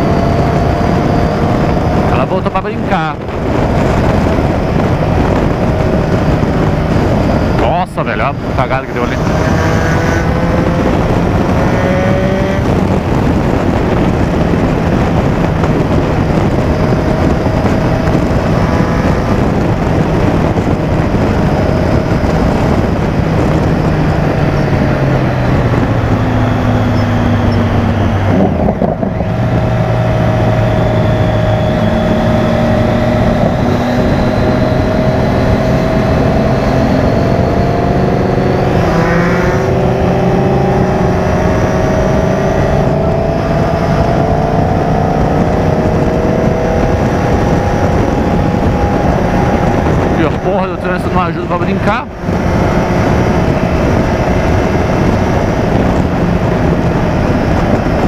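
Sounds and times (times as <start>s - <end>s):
motorcycle engine running: 0.0s - 58.0s
wind rush: 0.0s - 58.0s.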